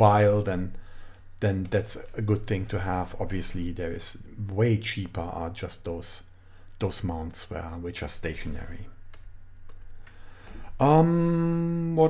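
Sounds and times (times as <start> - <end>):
computer keys clicking: 9.1 - 10.2.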